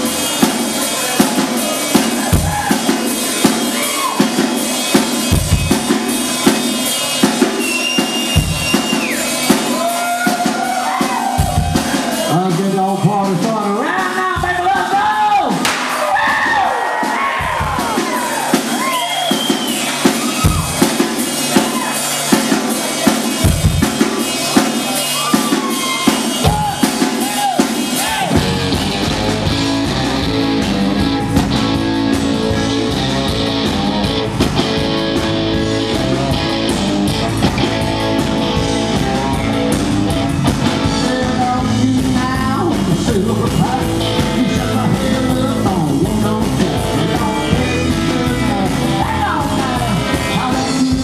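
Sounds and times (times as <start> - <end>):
drum hits: 0.0 - 12.4, 14.3 - 41.2
bass guitar: 0.0 - 51.0
country band playing: 0.0 - 51.0
electric guitar: 15.4 - 51.0.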